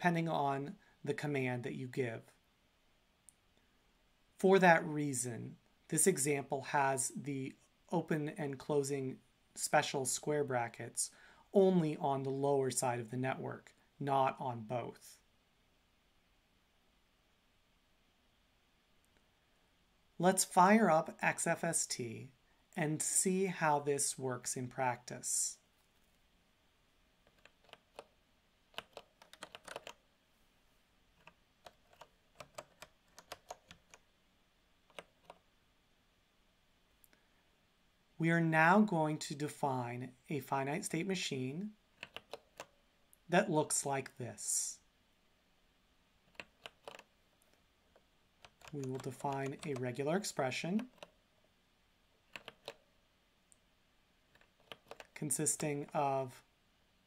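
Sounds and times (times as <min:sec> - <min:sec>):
keyboard typing: 0:27.2 - 0:30.0, 0:31.2 - 0:34.1, 0:34.9 - 0:35.4, 0:42.0 - 0:42.8, 0:46.3 - 0:49.9, 0:50.8 - 0:51.2, 0:52.2 - 0:52.8, 0:54.3 - 0:55.2.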